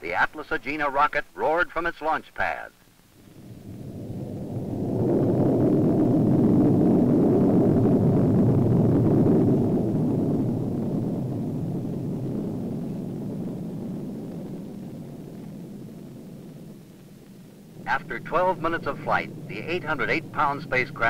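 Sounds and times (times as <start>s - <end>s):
rocket roaring at liftoff: 3.0s - 21.0s.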